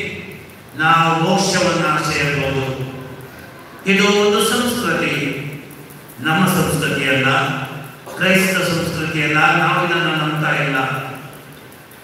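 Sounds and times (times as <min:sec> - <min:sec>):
man speaking: 0:00.0 - 0:05.6, 0:06.2 - 0:11.2.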